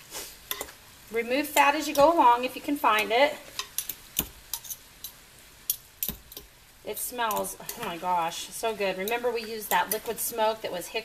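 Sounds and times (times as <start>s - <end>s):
metal forks clinking on pot: 0.5s - 0.7s, 3.6s - 6.5s, 7.2s - 8.0s, 9.0s - 10.3s.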